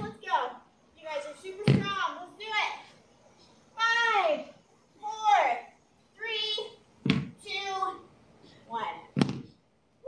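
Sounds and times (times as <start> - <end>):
high-pitched voices calling out: 3.7 - 8.1
dumbbell thumping on floor mat: 7.0 - 7.4, 9.2 - 9.6.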